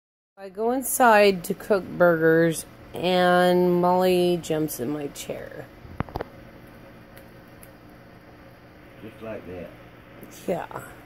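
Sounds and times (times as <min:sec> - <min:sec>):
faint steady hum: 0:00.4 - 0:11.0.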